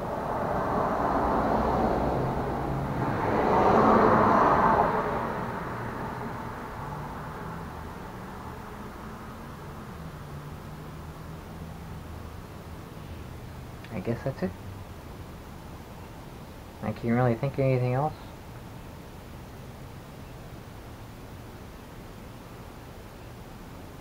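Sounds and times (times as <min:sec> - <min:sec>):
motor vehicle passing by: 0:00.0 - 0:15.0
low hum: 0:00.0 - 0:16.8.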